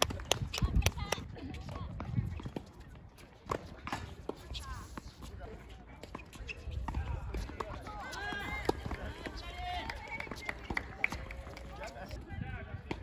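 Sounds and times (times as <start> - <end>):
people talking: 0.0 - 3.0, 3.9 - 13.0.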